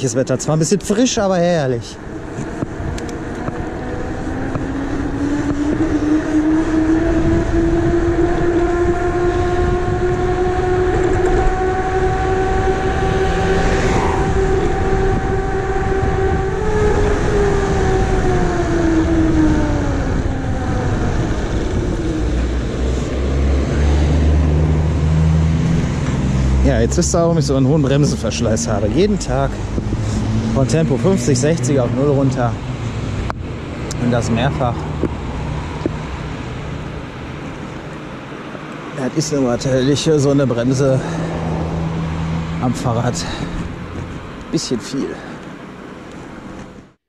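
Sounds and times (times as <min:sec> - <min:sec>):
wind rushing: 0:01.5 - 0:38.3
low rumble: 0:01.8 - 0:38.1.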